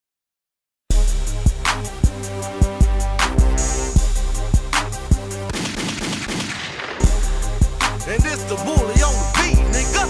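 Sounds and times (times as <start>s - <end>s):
hip hop beat: 0.9s - 6.2s, 7.0s - 10.0s
machine-gun fire sound effect: 5.5s - 7.1s.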